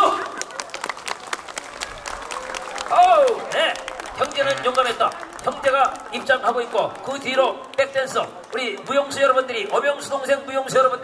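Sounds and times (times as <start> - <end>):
audience applauding: 0.0 - 10.2.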